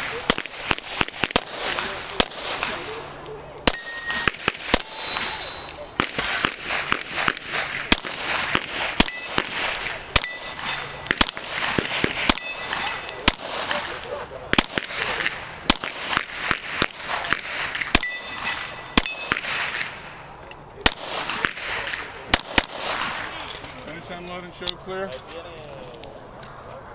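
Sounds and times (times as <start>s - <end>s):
pistol shots: 0.0s - 20.1s, 20.8s - 23.7s
bullets ringing on steel plates: 3.7s - 5.9s, 9.0s - 13.4s, 18.0s - 19.7s.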